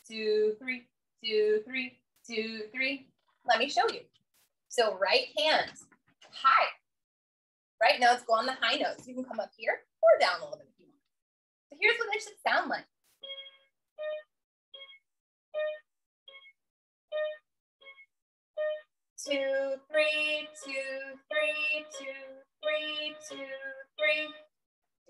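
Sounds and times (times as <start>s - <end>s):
toy keyboard two-note pattern: 13.2s - 15.0s, 15.6s - 24.5s
woman singing: 19.2s - 24.5s.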